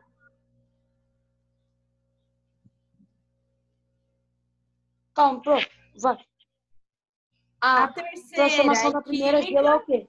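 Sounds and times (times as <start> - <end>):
faint steady hum: 0.0 - 6.5.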